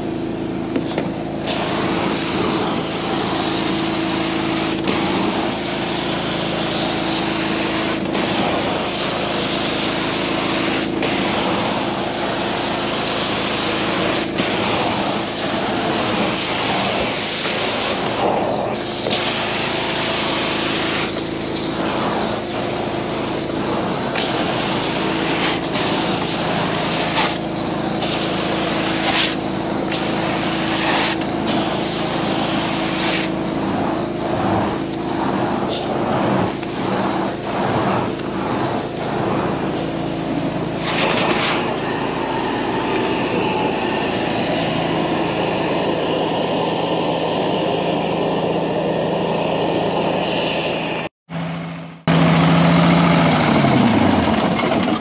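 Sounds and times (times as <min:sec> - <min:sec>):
extraction wand hissing on carpet: 0:00.0 - 0:51.1
vacuum roaring and humming: 0:00.0 - 0:55.0.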